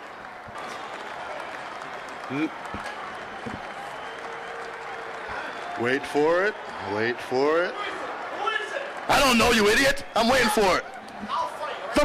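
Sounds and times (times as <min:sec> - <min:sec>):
crowd applause: 0:00.0 - 0:12.0.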